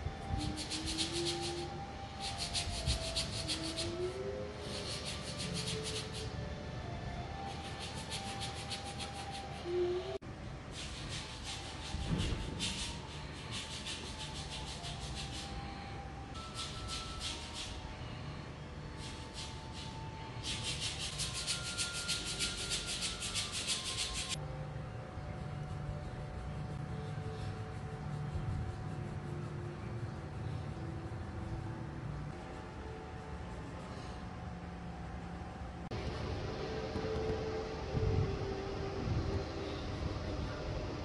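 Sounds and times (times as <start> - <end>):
foot file rubbing on feet: 0.4 - 4.0, 4.6 - 6.3, 7.5 - 9.6, 10.8 - 15.6, 19.0 - 24.4.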